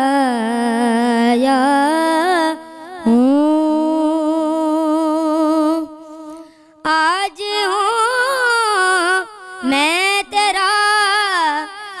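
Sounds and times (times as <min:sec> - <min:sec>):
boy reciting unaccompanied: 0:00.0 - 0:12.0.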